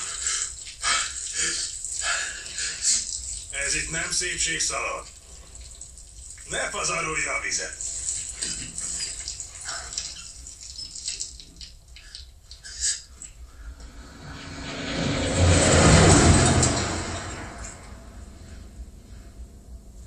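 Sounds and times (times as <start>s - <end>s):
water splashing and dripping: 0.0s - 18.0s
vehicle driving on dirt road: 13.8s - 18.7s.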